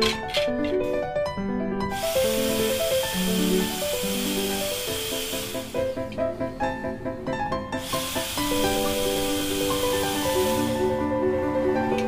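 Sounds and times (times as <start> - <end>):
background piano music: 0.0 - 12.0
electric drill boring into bamboo: 1.9 - 6.1, 7.8 - 12.0.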